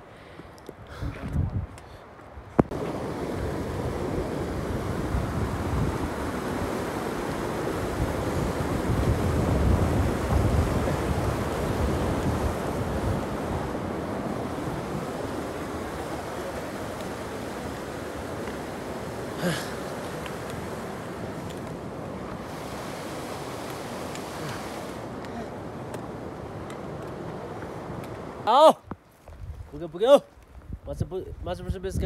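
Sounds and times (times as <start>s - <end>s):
mountain stream rushing: 2.5s - 28.8s.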